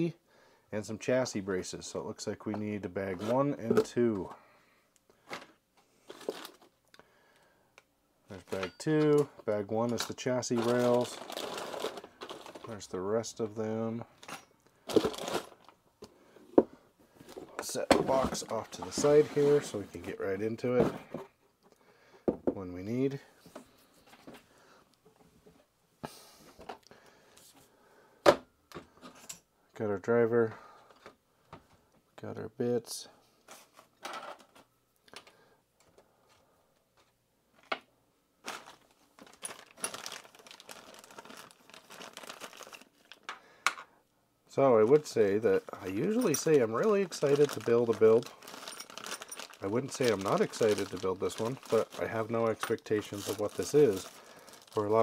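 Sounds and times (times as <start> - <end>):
plastic bags crinkling in box: 6.1 - 6.8, 10.1 - 12.8, 14.9 - 15.7, 38.4 - 43.3, 45.0 - 55.0.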